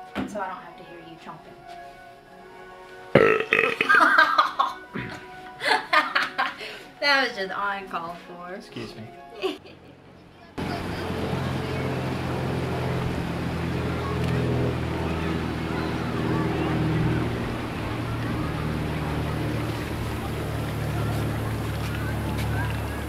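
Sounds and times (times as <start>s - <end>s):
outdoor background noise: 9.4s - 23.0s.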